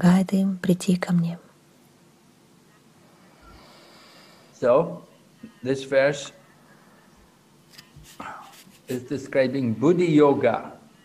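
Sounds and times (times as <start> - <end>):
person speaking: 7.8 - 10.5.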